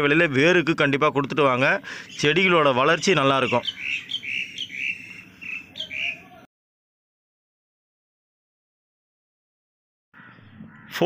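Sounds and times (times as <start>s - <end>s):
small bird chirping: 1.9s - 6.5s.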